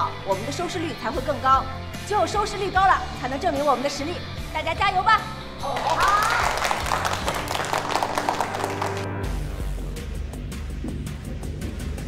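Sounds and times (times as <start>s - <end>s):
background music: 0.0s - 12.0s
group clapping: 5.6s - 9.4s.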